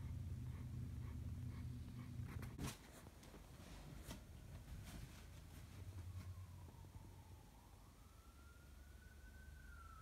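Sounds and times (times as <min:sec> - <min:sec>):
distant emergency siren wailing: 0:05.6 - 0:10.0.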